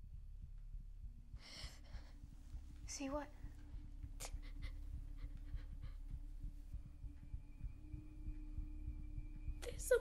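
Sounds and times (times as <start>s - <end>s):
low pulsing rumble: 0.0s - 10.0s.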